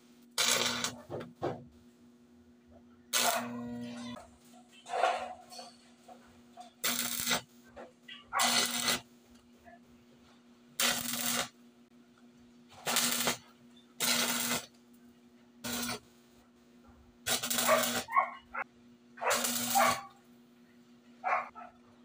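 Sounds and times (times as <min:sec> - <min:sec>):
welding arc crackle: 0:00.2 - 0:01.0, 0:03.1 - 0:04.2, 0:06.8 - 0:07.5, 0:08.3 - 0:09.1, 0:10.8 - 0:11.6, 0:12.8 - 0:14.8, 0:15.6 - 0:16.1, 0:17.2 - 0:18.2, 0:19.2 - 0:20.2.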